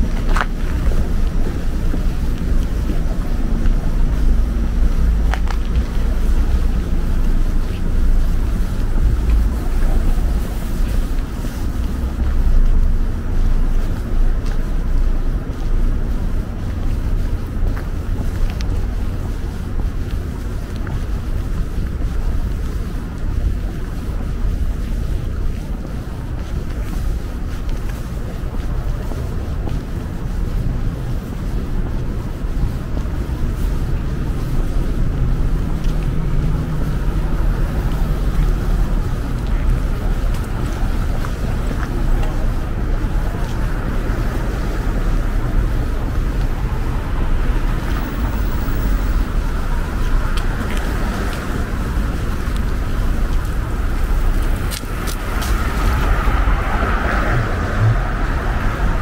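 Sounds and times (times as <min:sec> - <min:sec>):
city street traffic rumble: 0:00.0 - 0:59.0
wind buffeting microphone: 0:00.0 - 0:59.0.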